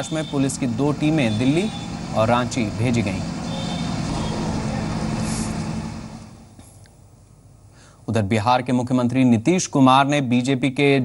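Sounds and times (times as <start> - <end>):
engine humming low: 0.0 - 6.6
road traffic: 0.0 - 6.9.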